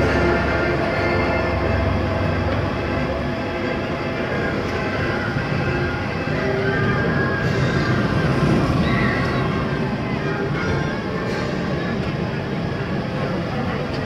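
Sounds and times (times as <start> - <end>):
monorail train rolling: 0.0 - 14.0.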